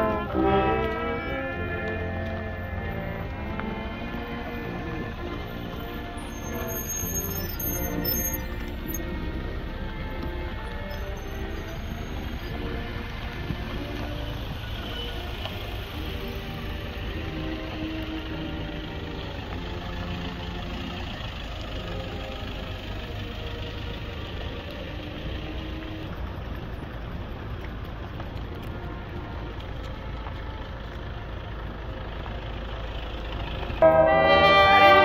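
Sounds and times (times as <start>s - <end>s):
car engines rumbling at low revs: 0.0s - 35.0s.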